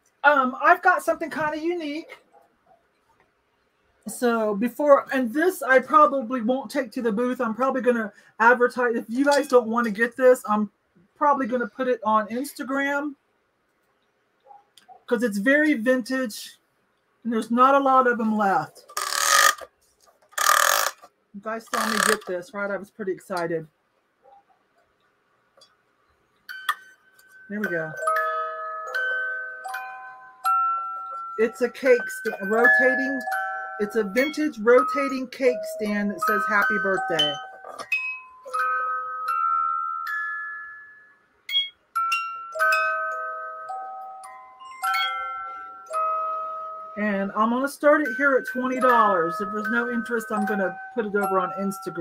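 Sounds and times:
music box playing a tune: 19.0s - 19.7s, 20.4s - 22.4s, 26.4s - 52.0s.

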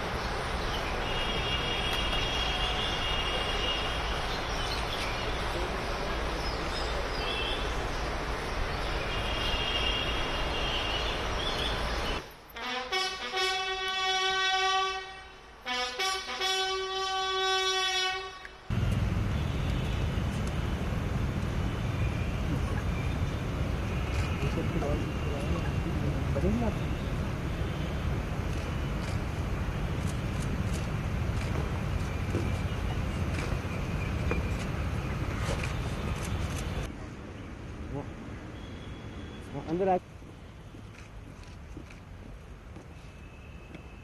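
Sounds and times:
brass bugle note: 12.6s - 18.6s.

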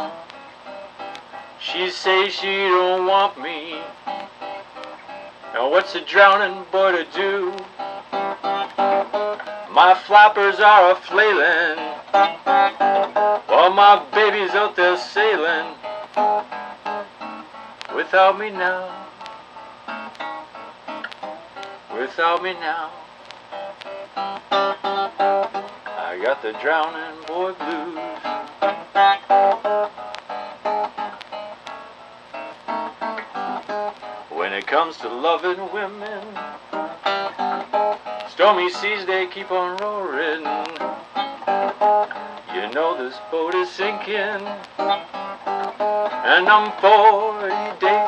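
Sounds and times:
acoustic blues guitar: 0.0s - 48.0s
person singing: 1.6s - 4.2s, 5.5s - 9.0s, 9.7s - 15.9s, 17.9s - 19.1s, 21.9s - 23.0s, 25.6s - 29.2s, 34.2s - 36.6s, 38.3s - 41.1s, 42.4s - 45.0s, 46.1s - 48.0s.

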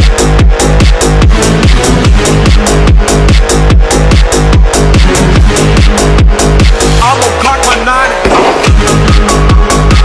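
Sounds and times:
electronic music: 0.0s - 10.0s.

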